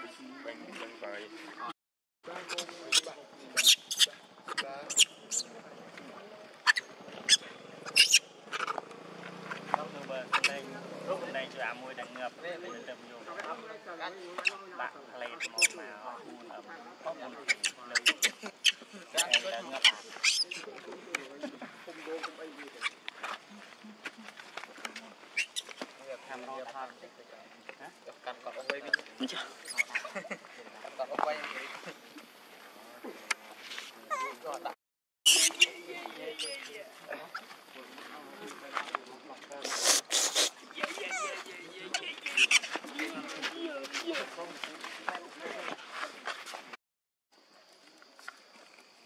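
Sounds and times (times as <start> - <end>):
young monkey squealing: 2.5 - 5.5, 6.6 - 8.8, 10.3 - 10.6, 15.2 - 15.8, 17.4 - 20.7, 25.4 - 25.8, 28.8 - 30.2, 35.3 - 37.5, 39.7 - 43.0.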